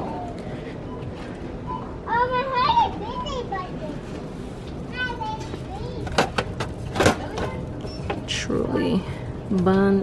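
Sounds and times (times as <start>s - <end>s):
faint store background: 0.0s - 10.0s.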